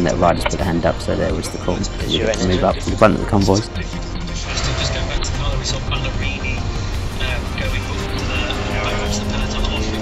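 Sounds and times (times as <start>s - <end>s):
background music: 0.0s - 10.0s
car road and engine rumble: 3.8s - 10.0s.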